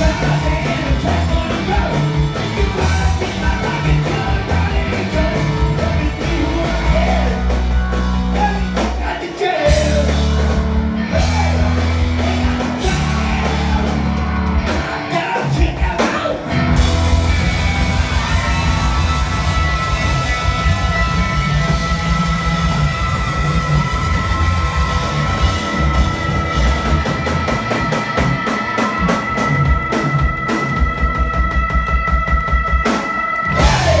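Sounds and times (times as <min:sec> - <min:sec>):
electric guitars: 0:00.0 - 0:34.0
live rock band playing: 0:00.0 - 0:34.0
pounding drum kit: 0:00.0 - 0:34.0.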